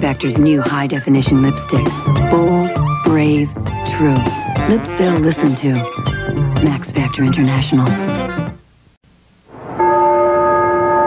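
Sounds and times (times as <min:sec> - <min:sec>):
sustained bell-like tone: 0:09.7 - 0:11.0.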